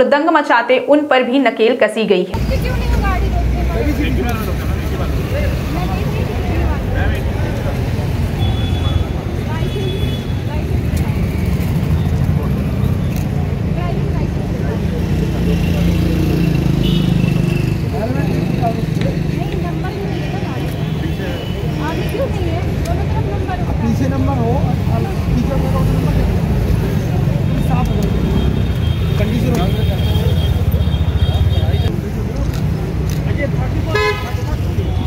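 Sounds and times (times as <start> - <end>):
people talking: 0.0 - 16.8, 17.5 - 28.4, 29.2 - 35.0
traffic and vehicle engines: 2.2 - 35.0.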